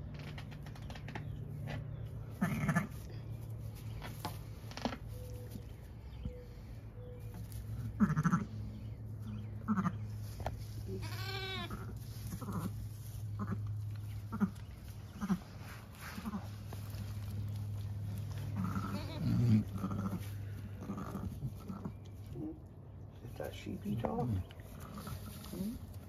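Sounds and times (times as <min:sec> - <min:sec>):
lamb bleating: 0:02.4 - 0:02.9, 0:08.0 - 0:08.5, 0:09.6 - 0:10.0, 0:10.9 - 0:12.8, 0:13.4 - 0:13.7, 0:18.5 - 0:20.2
ewe low calls: 0:10.8 - 0:22.6.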